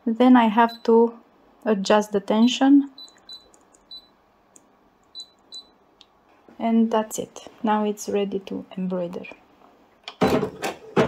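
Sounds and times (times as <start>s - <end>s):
short high key beeps: 3.0s - 4.1s, 5.1s - 5.8s.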